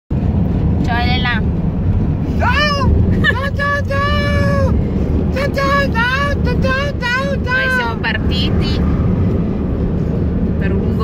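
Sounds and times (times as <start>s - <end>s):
car engine and road rumble: 0.1s - 11.0s.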